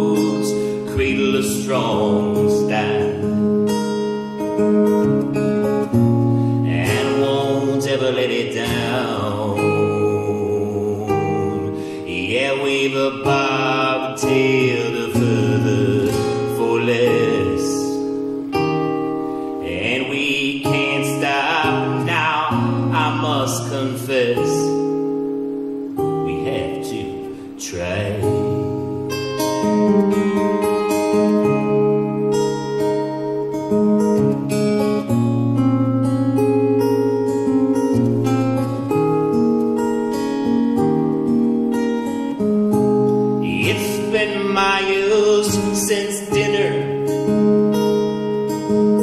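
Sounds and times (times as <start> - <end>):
man singing: 0.0 - 3.4, 6.6 - 18.1, 19.6 - 24.9, 26.2 - 28.9, 43.4 - 47.2
acoustic guitar strumming: 0.0 - 49.0.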